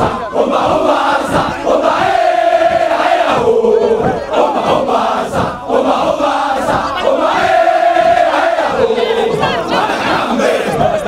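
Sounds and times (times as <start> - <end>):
soldiers shouting in unison: 0.0 - 11.0.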